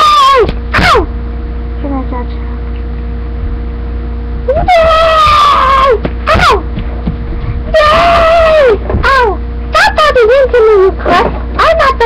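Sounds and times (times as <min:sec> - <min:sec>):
child screaming: 0:00.0 - 0:01.1, 0:04.5 - 0:06.7, 0:07.7 - 0:10.0
steady low hum: 0:00.0 - 0:12.0.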